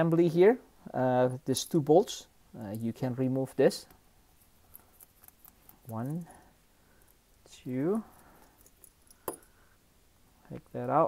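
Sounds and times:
screwdriver handling sounds: 0:03.8 - 0:06.4.

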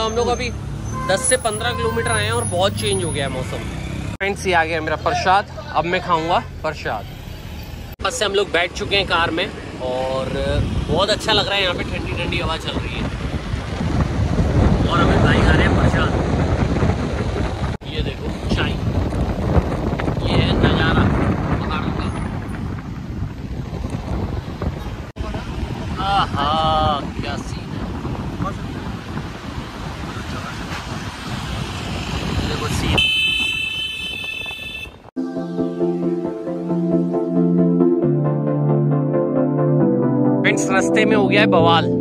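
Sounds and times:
wind buffeting microphone: 0:09.0 - 0:35.1
person speaking: 0:40.4 - 0:42.0.

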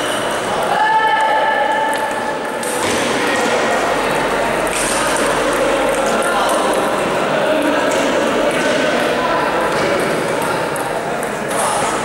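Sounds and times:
hubbub of voices: 0:00.0 - 0:12.0
table tennis balls clicking: 0:04.6 - 0:12.0.

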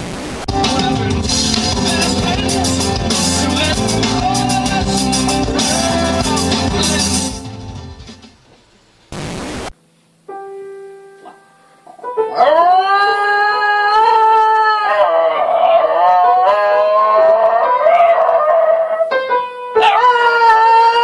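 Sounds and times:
long high howls: 0:11.9 - 0:19.2.

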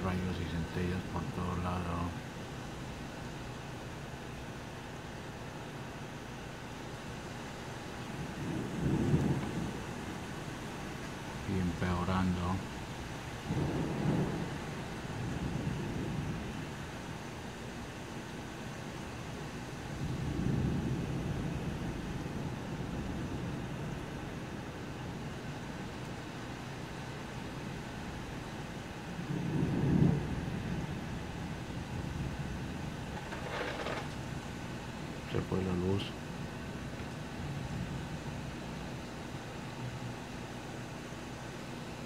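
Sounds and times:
steady rain: 0:00.0 - 0:42.0
thunder rumbling: 0:08.1 - 0:11.9, 0:12.6 - 0:17.2, 0:19.9 - 0:25.6, 0:29.0 - 0:40.0.

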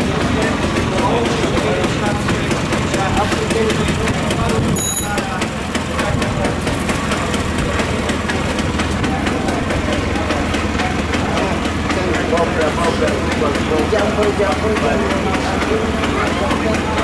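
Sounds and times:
crowd talking: 0:00.0 - 0:17.0
vehicle engine idling: 0:00.0 - 0:17.0
short high beep: 0:04.8 - 0:05.1.

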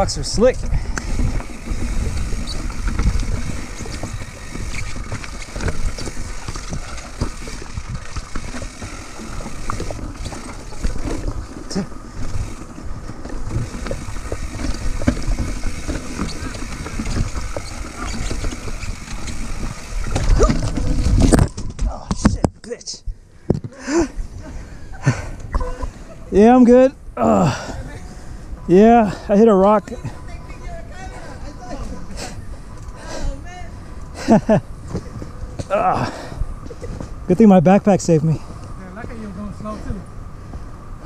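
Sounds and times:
mountain bike rattling over rocks: 0:00.0 - 0:22.4
bike crashing on rocks: 0:01.0 - 0:22.4.

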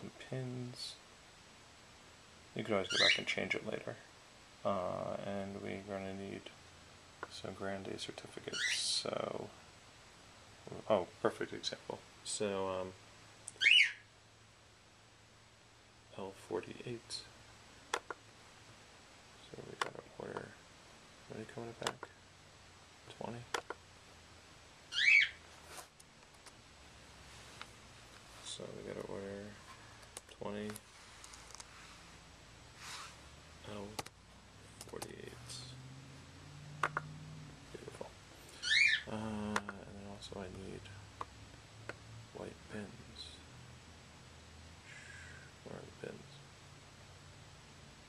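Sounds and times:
bird whistled chirp: 0:13.6 - 0:14.0, 0:24.9 - 0:25.4, 0:38.6 - 0:39.1.

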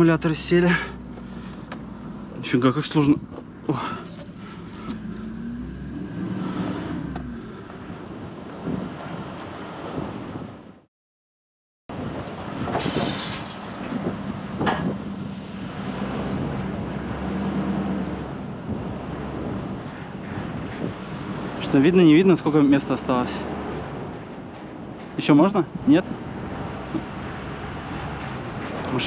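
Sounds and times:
pickup truck engine revving: 0:00.8 - 0:08.3, 0:14.2 - 0:19.8.

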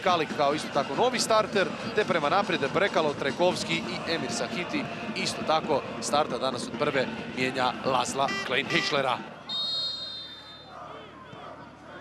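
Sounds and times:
stadium ambience: 0:00.0 - 0:12.0
referee whistle blast: 0:09.5 - 0:10.7.

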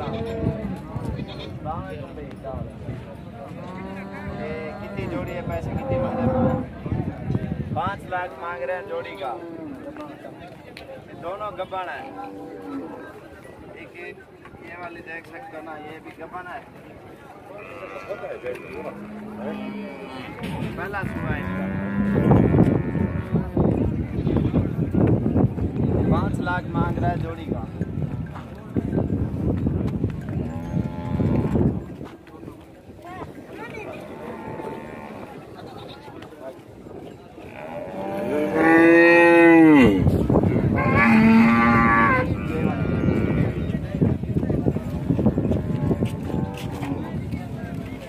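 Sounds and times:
cows mooing: 0:17.6 - 0:20.4, 0:21.0 - 0:23.6, 0:30.4 - 0:31.7, 0:34.1 - 0:35.4, 0:37.5 - 0:40.1, 0:40.8 - 0:43.7
cow mooing: 0:37.5 - 0:40.0, 0:40.8 - 0:43.7.

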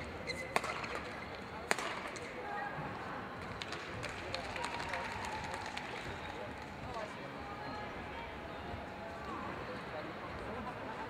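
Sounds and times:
voices in a hall: 0:00.0 - 0:11.0
shoe squeaks: 0:00.2 - 0:01.4.

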